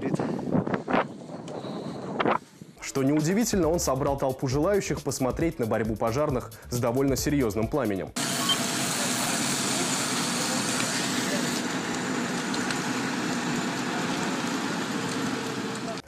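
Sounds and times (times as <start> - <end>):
fire roaring: 8.2 - 16.0
onlookers talking: 8.8 - 16.0.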